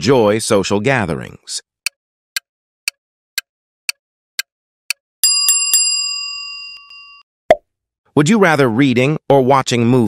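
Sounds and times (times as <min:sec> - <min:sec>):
clock-like ticks: 0:01.8 - 0:05.0
bell ringing: 0:05.2 - 0:07.2.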